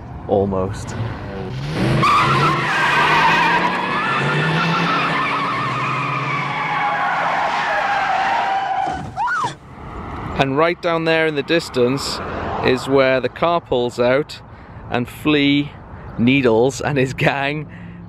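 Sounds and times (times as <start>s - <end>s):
car tyres squealing: 1.5s - 9.7s.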